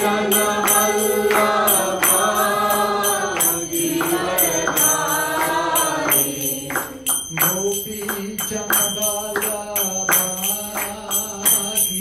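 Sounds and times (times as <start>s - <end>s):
group chanting: 0.0s - 8.6s
hand cymbals striking: 0.0s - 12.0s.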